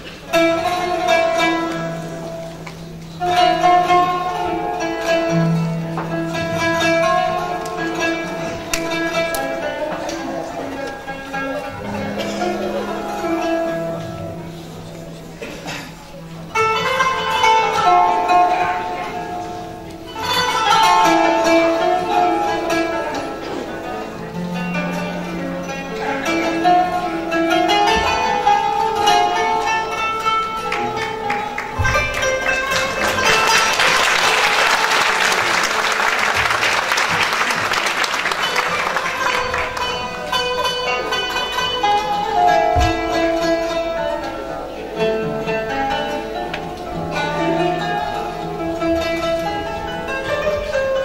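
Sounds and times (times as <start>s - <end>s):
plucked string instrument melody: 0.0s - 51.0s.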